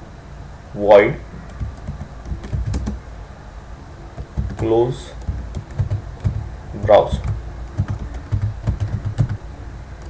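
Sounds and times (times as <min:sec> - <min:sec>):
computer keyboard key clicks: 0:01.5 - 0:03.0, 0:04.2 - 0:06.5, 0:07.2 - 0:09.4.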